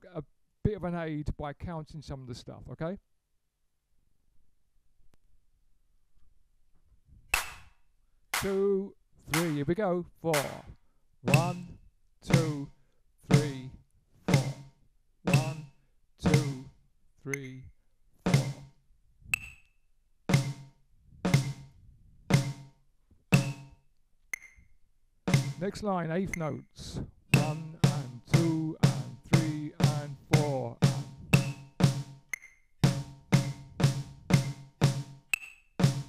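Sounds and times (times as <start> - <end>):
drum struck with drumsticks: 7.4 - 7.7, 8.4 - 8.6, 9.3 - 9.7, 10.4 - 11.7, 12.3 - 12.7, 13.3 - 13.7, 14.3 - 14.7, 15.3 - 15.7, 16.3 - 16.7, 18.3 - 18.7, 20.3 - 20.7, 21.3 - 21.7, 22.3 - 22.7, 23.3 - 23.8, 25.3 - 25.8, 27.3 - 36.0
sharp click: 7.4 - 7.8.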